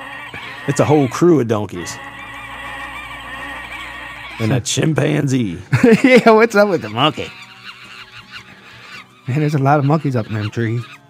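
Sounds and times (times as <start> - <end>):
people talking: 0.7 - 2.0, 4.4 - 7.3, 9.3 - 11.0.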